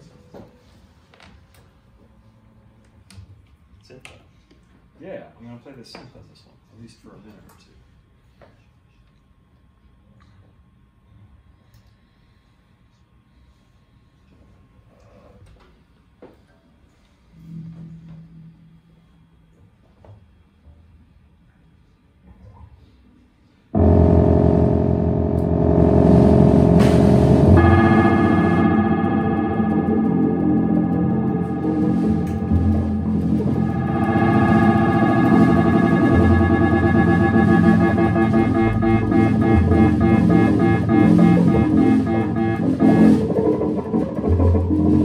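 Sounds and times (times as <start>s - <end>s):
drum kit: 23.8s - 45.0s
electric guitars: 23.8s - 45.0s
low held bass note: 23.8s - 45.0s
synthesizer sustained chord: 23.8s - 45.0s.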